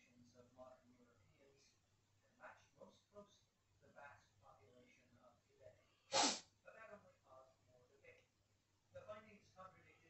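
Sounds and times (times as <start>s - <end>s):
person sneezing: 6.1s - 6.4s.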